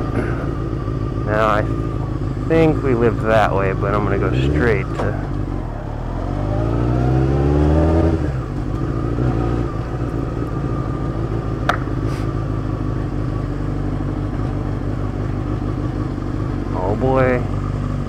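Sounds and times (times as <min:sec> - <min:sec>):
motorcycle engine accelerating: 0:00.0 - 0:18.0.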